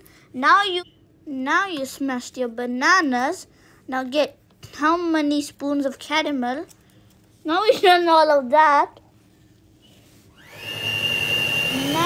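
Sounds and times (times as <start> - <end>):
electric hand mixer whining: 10.3 - 12.0.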